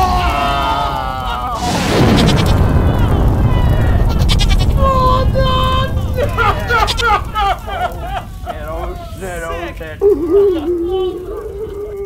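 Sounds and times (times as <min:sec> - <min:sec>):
fireball low rumble: 0:00.0 - 0:09.6.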